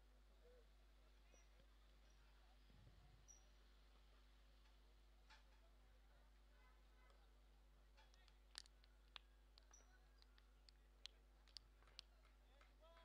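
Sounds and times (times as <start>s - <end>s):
faint sharp clicks: 8.0s - 12.7s.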